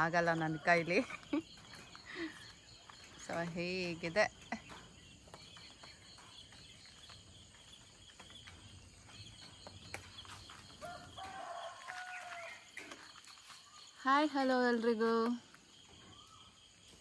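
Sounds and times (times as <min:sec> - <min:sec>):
crickets chirring: 0:00.0 - 0:17.0
faint rooster crowing: 0:10.7 - 0:12.9.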